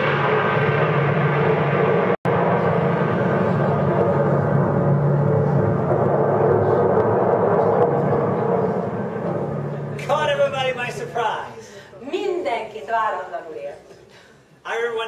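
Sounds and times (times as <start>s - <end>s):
rumbling disaster sound effect: 0.0s - 11.6s.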